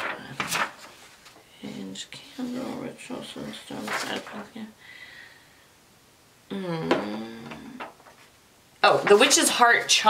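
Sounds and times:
paper and packaging rustling: 0.0 - 2.8, 3.4 - 4.7, 8.9 - 9.9.

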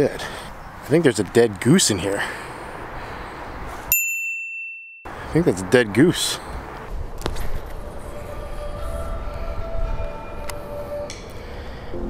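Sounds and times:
steady chord of held tones: 10.6 - 12.0.

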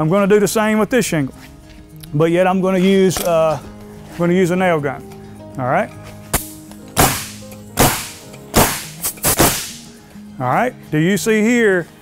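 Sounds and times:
roofing nailer firing: 6.3 - 9.9.

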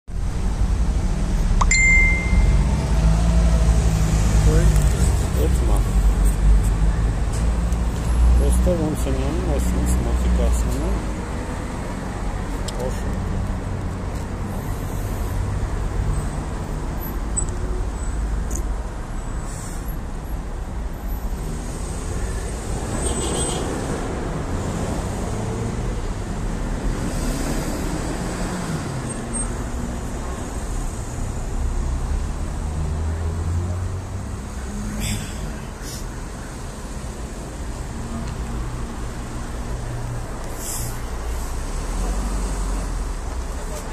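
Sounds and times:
car and bus engines passing: 0.1 - 43.9.

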